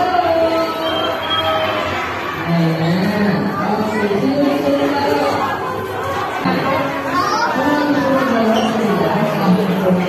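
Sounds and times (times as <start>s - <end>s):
people talking at once: 0.0s - 10.0s.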